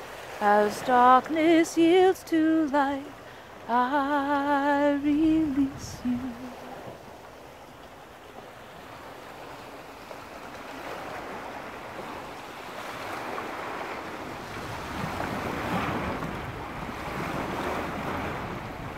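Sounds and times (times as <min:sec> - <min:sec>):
small waves washing on shore: 0:00.0 - 0:18.9
wind rumbling on microphone: 0:04.7 - 0:07.2, 0:10.7 - 0:18.9.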